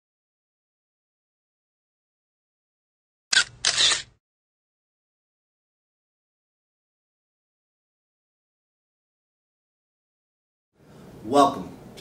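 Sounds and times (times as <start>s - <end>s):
noisy shutter-like burst: 3.3s - 4.2s
sharp click: 3.3s - 4.2s.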